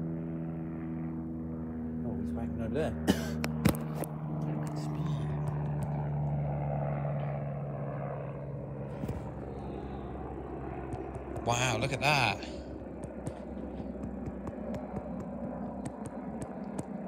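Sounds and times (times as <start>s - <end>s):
helicopter flying overhead: 0.0s - 17.0s.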